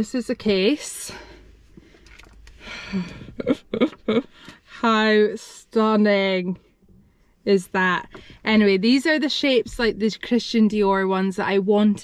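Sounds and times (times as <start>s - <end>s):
breathy laugh: 2.7s - 4.5s.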